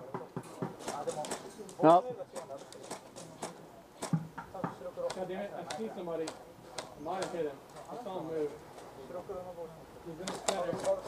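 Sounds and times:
faint distant talk: 0.0s - 11.0s
sharp clicks: 10.2s - 11.0s.

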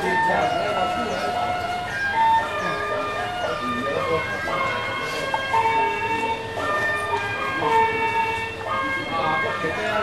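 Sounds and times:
two-tone siren: 0.0s - 10.0s.

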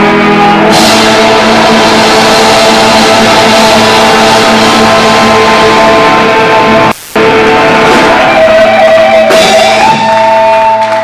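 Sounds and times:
distorted electric guitars: 0.0s - 11.0s.

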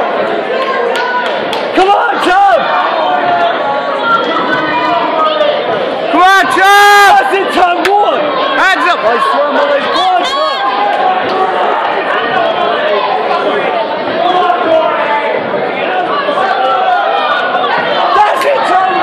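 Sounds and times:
crowd shouting: 0.0s - 19.0s.

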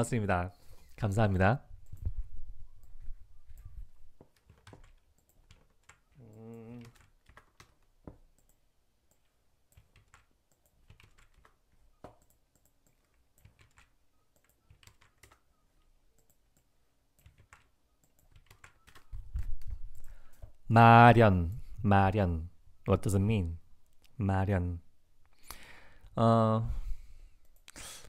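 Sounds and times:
person humming: 6.2s - 7.1s.

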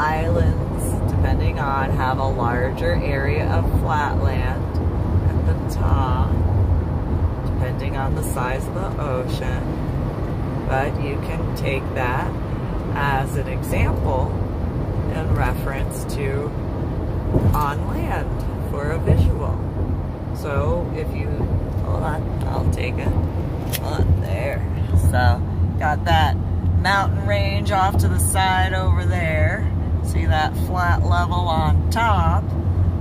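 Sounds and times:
woman talking: 0.0s - 4.7s, 5.3s - 6.4s, 7.5s - 9.7s, 10.7s - 14.4s, 15.1s - 16.5s, 17.4s - 19.6s, 20.4s - 32.4s
road noise in car cabin: 0.0s - 33.0s.

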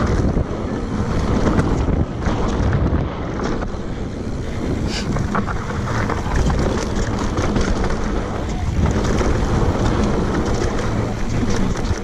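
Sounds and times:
bike rattling over rocks: 0.0s - 12.0s
bike tyres rumbling: 0.0s - 12.0s
wind buffeting microphone: 0.0s - 12.0s.

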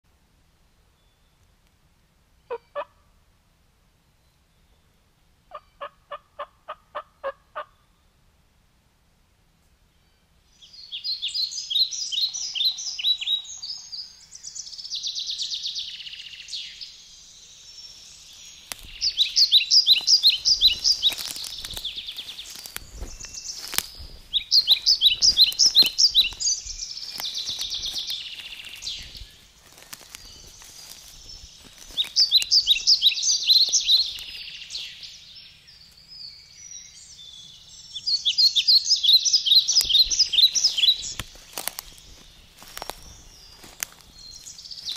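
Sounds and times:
songbird singing: 0.0s - 8.3s, 9.6s - 44.9s
footsteps crunching dry leaves: 17.7s - 35.2s, 39.2s - 44.9s
buzzy bird trill: 18.2s - 29.4s.

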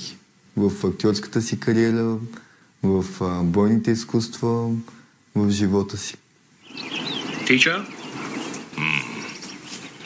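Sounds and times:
birds chirping: 6.5s - 10.0s.

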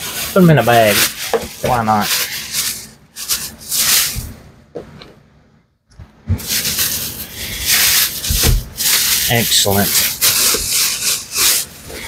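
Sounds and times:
plastic bag rustling: 0.0s - 4.4s, 6.3s - 12.0s.

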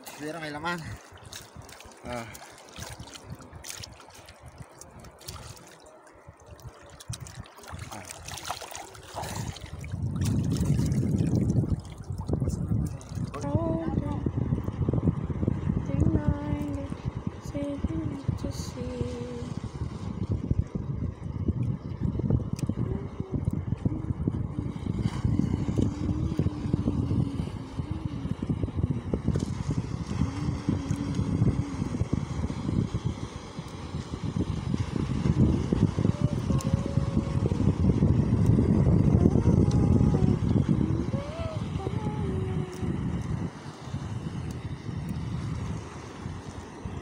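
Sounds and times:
choppy sea and surf: 0.0s - 47.0s
wind buffeting microphone: 0.0s - 47.0s
faint voice: 36.0s - 37.7s, 39.2s - 43.0s.

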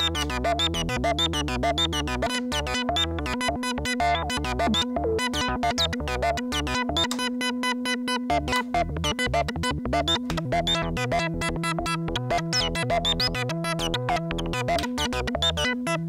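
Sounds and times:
plucky synthesizer notes: 0.0s - 16.0s
pulsing synth bass line: 0.0s - 16.0s.

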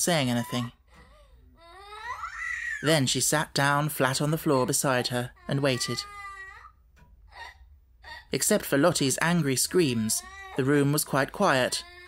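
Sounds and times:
young child wailing: 0.5s - 2.8s.

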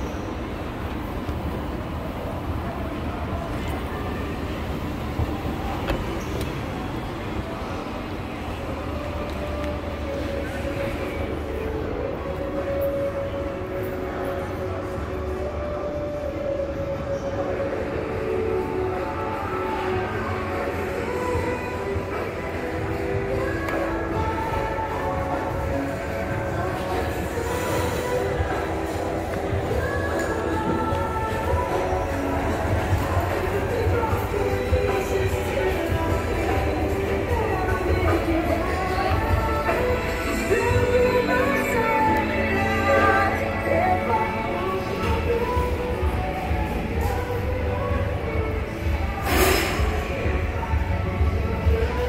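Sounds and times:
background music: 0.0s - 52.0s.

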